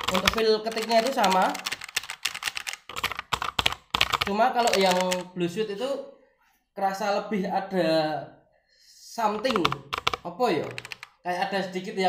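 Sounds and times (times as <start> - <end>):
fast typing on mechanical keyboard: 0.0 - 5.3, 9.3 - 11.2.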